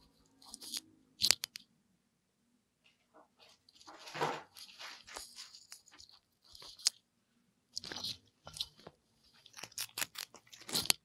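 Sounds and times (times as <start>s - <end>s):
rabbit chewing food: 0.0s - 1.6s, 3.7s - 7.1s, 7.7s - 11.0s.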